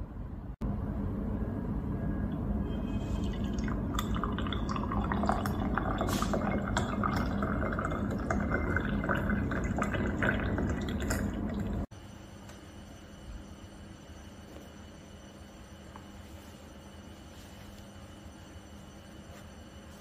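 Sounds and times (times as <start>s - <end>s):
coffee pouring into a glass: 3.2s - 11.9s.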